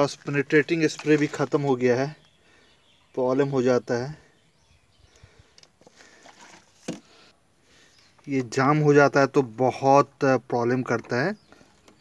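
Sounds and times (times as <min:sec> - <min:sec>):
plastic bottle and tools handling: 0:00.1 - 0:01.8, 0:05.5 - 0:07.3.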